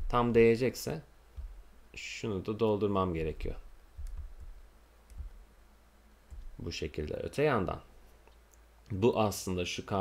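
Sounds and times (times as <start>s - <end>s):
low steady hum: 0.0s - 10.0s
computer mouse clicks: 4.0s - 5.4s.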